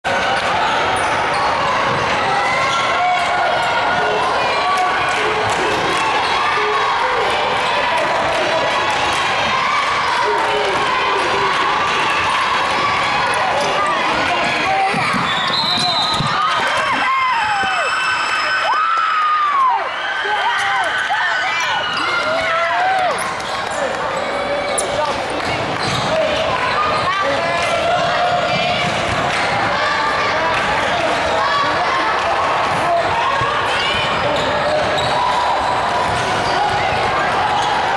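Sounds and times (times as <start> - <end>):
players and spectators talking: 0.0 - 37.9
voices calling out echoing: 0.0 - 37.9.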